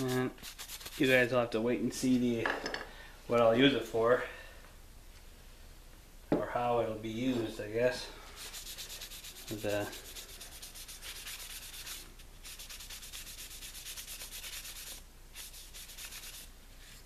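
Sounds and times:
hand-sanding wood: 0:00.0 - 0:01.2, 0:08.4 - 0:17.0.

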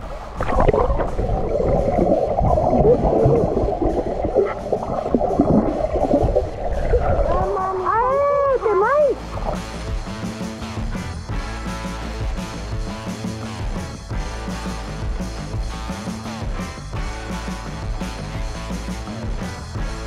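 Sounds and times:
muffled underwater water churning: 0:00.0 - 0:10.0
muffled warbling voice underwater: 0:00.4 - 0:09.6.

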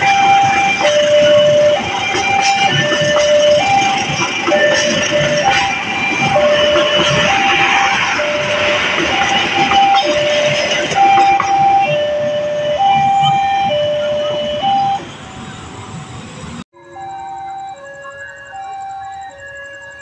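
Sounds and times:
passing train rumble and rattle: 0:00.0 - 0:16.6
electronic tones: 0:00.0 - 0:20.0
two-tone electronic warning chime: 0:00.0 - 0:20.0.

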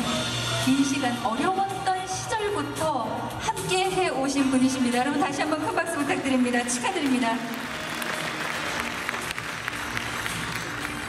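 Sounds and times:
audience applauding: 0:06.2 - 0:11.0.

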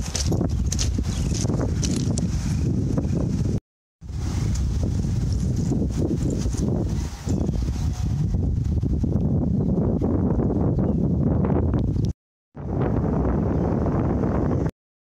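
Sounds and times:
wind buffeting microphone: 0:00.0 - 0:14.7.

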